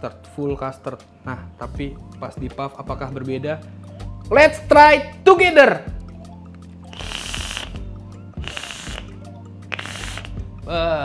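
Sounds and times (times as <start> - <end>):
vape puffs airy hiss: 6.8 - 10.5.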